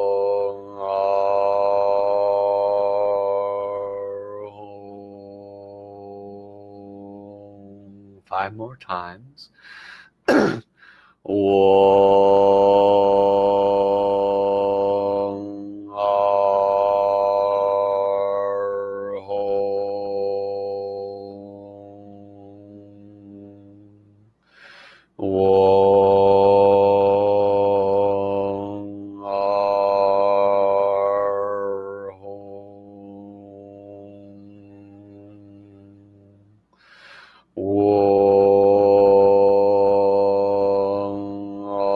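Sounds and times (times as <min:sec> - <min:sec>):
man chanting steady tones: 0:00.0 - 0:09.6, 0:11.3 - 0:24.1, 0:25.2 - 0:36.2, 0:37.5 - 0:41.9
man chanting long held note: 0:37.6 - 0:41.9.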